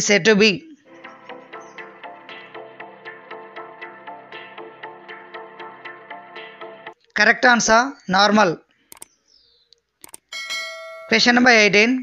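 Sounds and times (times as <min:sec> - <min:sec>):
mouse clicks: 0:08.9 - 0:10.3
bell chime: 0:10.3 - 0:11.5.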